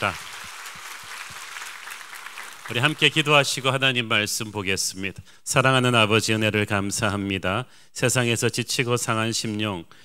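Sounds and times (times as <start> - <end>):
crowd applauding: 0.0 - 3.8.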